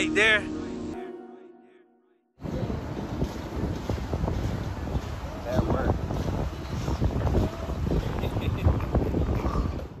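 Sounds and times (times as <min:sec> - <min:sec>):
wind buffeting microphone: 0:02.4 - 0:10.0.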